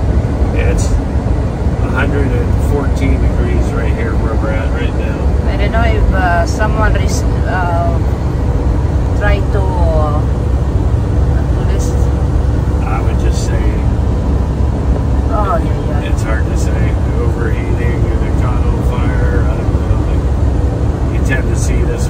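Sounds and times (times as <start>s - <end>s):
vehicle engine and road rumble: 0.0s - 22.0s
low voice: 1.8s - 5.2s, 12.8s - 13.9s, 15.2s - 20.2s, 21.2s - 22.0s.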